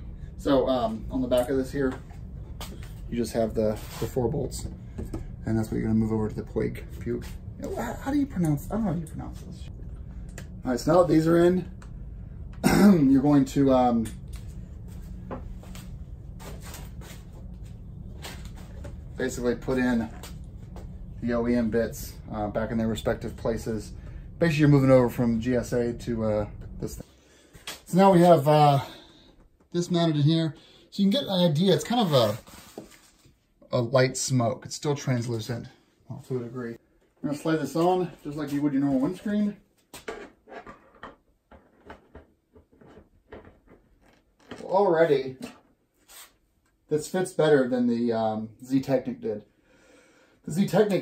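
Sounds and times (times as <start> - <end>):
steady low hum: 0.0 - 39.7.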